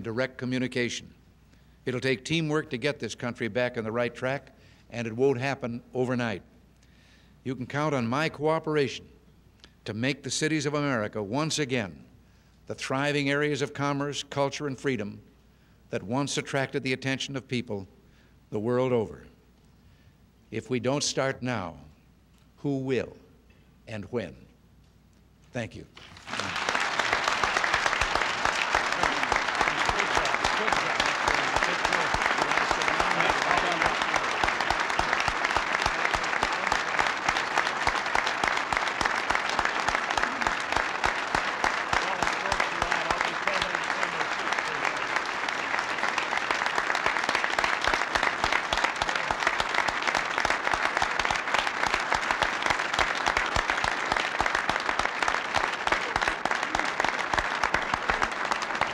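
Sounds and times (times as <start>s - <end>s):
audience applauding: 26.0s - 58.9s.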